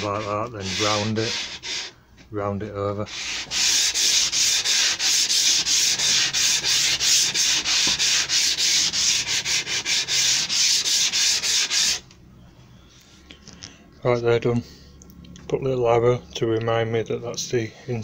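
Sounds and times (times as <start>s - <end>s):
hand sanding scratchy strokes: 0.0s - 1.9s, 3.1s - 12.0s.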